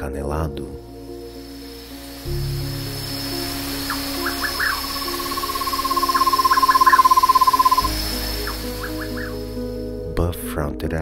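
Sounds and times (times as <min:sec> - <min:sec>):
background music: 0:00.0 - 0:11.0
owl trilling: 0:02.9 - 0:09.5.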